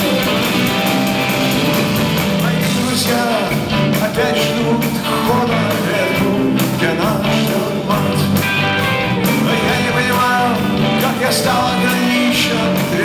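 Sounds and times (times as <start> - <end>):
bass guitar: 0.0 - 13.0
drum kit with cymbals: 0.0 - 13.0
electric guitars: 0.0 - 13.0
keyboards: 0.0 - 13.0.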